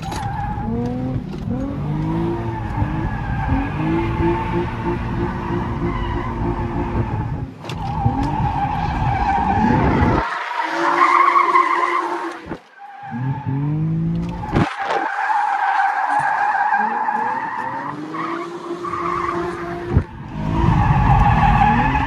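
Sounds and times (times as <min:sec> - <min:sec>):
car engine revving: 0:00.3 - 0:22.0.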